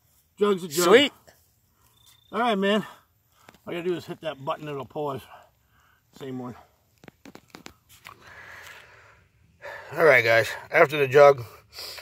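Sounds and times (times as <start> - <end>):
man speaking: 0.4 - 1.2, 2.3 - 3.0, 3.7 - 5.4, 6.2 - 6.6, 9.9 - 11.6
faint airy breath: 5.3 - 6.1, 8.1 - 10.0, 11.5 - 12.0.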